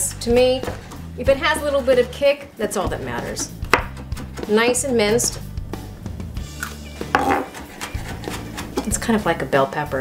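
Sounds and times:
knife knocking on wooden board: 3.4s - 4.5s, 7.1s - 8.9s
knife scraping on cutting board: 7.4s - 8.9s.

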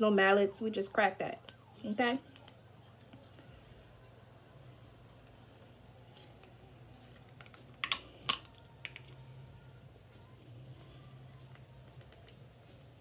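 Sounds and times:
crab shell cracking: 7.3s - 9.1s.

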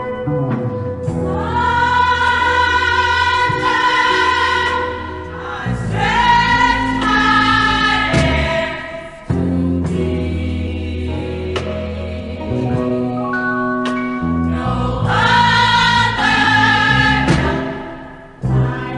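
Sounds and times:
gospel choir singing: 1.0s - 18.9s
band accompaniment: 5.9s - 13.2s, 15.0s - 18.8s.

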